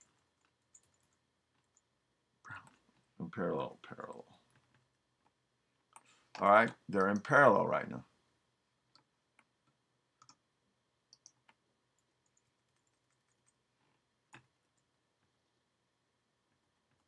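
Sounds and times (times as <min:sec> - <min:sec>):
computer keyboard and mouse clicks: 0:00.0 - 0:01.9, 0:08.9 - 0:10.4, 0:11.1 - 0:13.6, 0:14.3 - 0:14.9.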